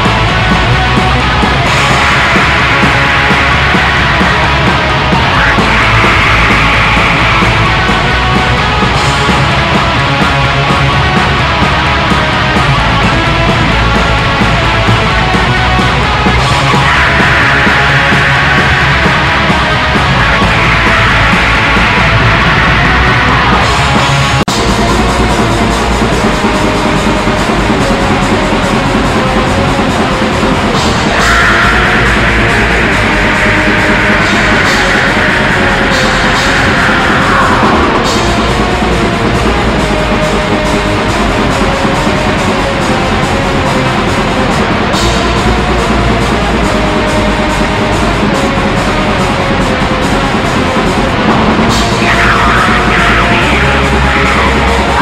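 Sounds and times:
black metal music: 0:00.0 - 0:55.0
distorted guitar: 0:00.0 - 0:55.0
metal drums: 0:00.0 - 0:55.0.

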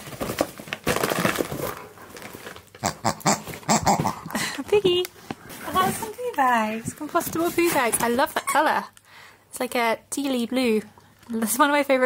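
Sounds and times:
cardboard and paper crinkling: 0:00.0 - 0:02.8, 0:03.4 - 0:08.4.

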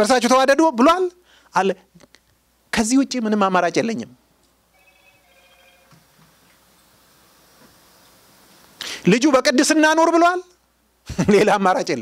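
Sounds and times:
faint electronic tone: 0:04.7 - 0:06.8.

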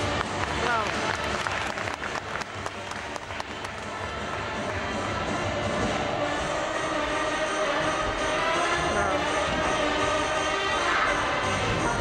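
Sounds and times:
spectators clapping: 0:00.0 - 0:05.2
accompaniment music: 0:00.0 - 0:12.0.

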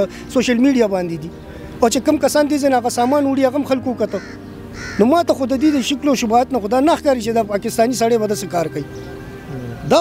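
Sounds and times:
faint bird calls: 0:04.0 - 0:06.0.

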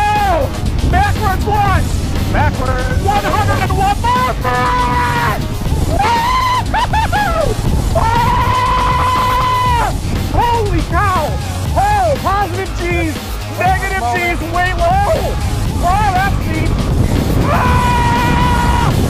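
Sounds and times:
riders whooping and yelling: 0:00.0 - 0:19.0
wind rushing on microphone: 0:00.0 - 0:19.0.

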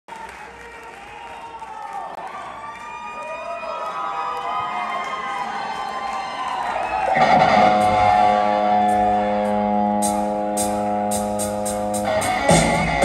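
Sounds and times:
electric guitar bending notes: 0:07.1 - 0:13.0.

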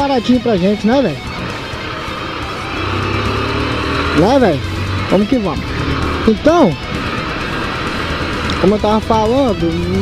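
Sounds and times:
motorcycle engine running: 0:00.2 - 0:10.0
wind rushing: 0:01.2 - 0:08.6.

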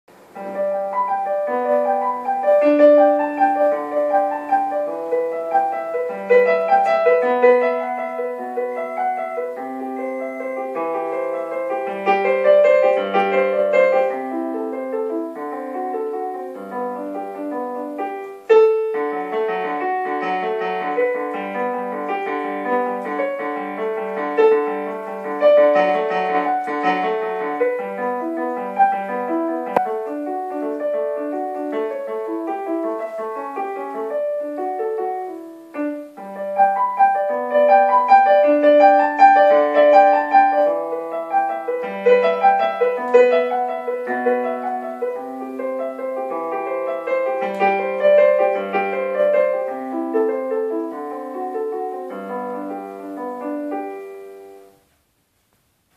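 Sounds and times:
digital piano playing: 0:00.1 - 0:54.9.

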